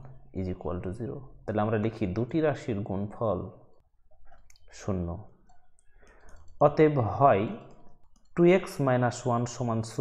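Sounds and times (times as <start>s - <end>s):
mouse clicking: 3.7s - 4.7s, 5.4s - 6.8s, 7.6s - 8.7s
person speaking: 4.4s - 10.0s.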